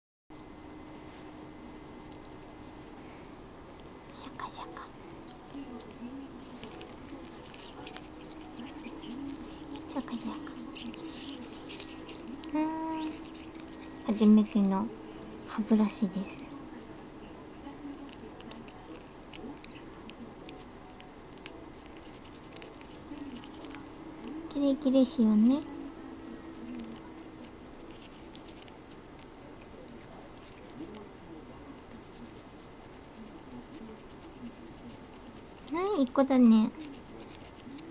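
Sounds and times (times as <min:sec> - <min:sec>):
toothbrush scrubbing teeth: 0:04.4 - 0:16.2, 0:17.6 - 0:37.9.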